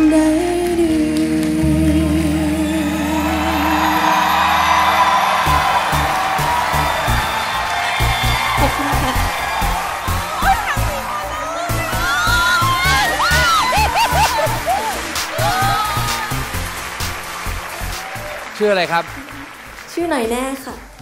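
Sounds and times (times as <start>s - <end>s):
woman singing with vibrato: 0.0s - 4.2s
audience applause and cheering: 2.3s - 21.0s
band accompaniment: 3.8s - 19.8s.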